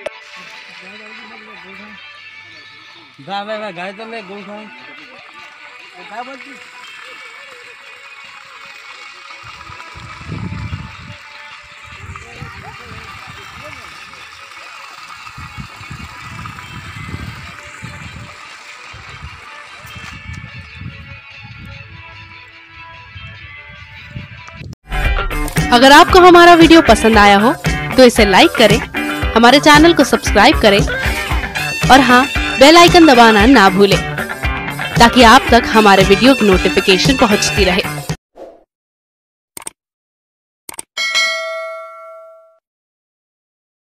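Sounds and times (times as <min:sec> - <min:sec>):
people talking indistinctly: 0:00.3 - 0:08.2, 0:25.6 - 0:38.0
bright bell ding: 0:41.0 - 0:42.6.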